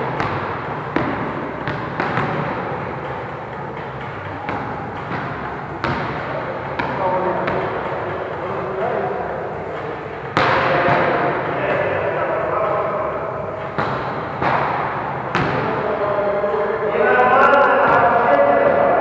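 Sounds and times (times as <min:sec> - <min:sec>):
players talking: 0:00.0 - 0:19.0
ball bouncing on wooden floor: 0:00.1 - 0:02.6, 0:04.5 - 0:06.2, 0:10.3 - 0:11.3.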